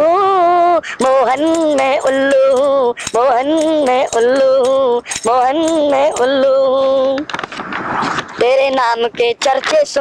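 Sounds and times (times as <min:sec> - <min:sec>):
man singing devotional song: 0:00.0 - 0:07.2
jingling metal percussion: 0:01.0 - 0:06.8.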